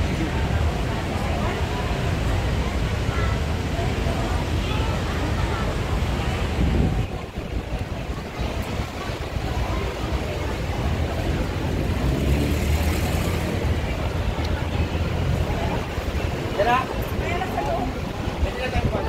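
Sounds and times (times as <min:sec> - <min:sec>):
traffic rumble: 0:00.0 - 0:19.0.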